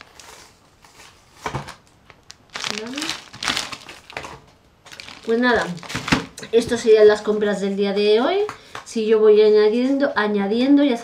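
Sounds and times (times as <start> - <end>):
plastic bag crinkling: 0.0 - 6.7.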